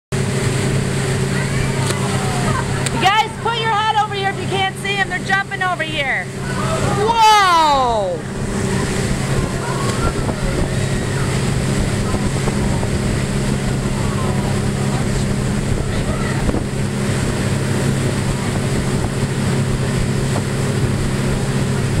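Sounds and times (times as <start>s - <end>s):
boat engine droning: 0.1s - 22.0s
churning wake rushing: 0.1s - 22.0s
wind buffeting microphone: 7.9s - 22.0s.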